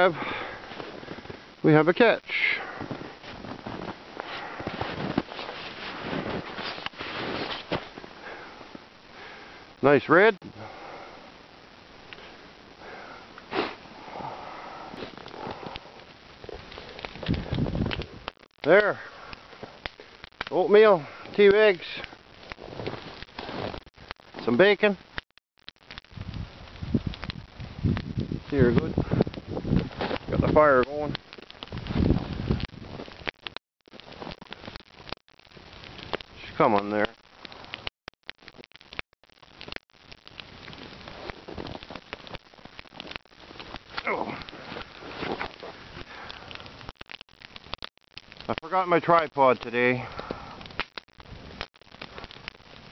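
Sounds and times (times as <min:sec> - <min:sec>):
campfire crackling and popping: 0:00.0 - 0:52.9
sharp sniff: 0:12.9 - 0:15.1.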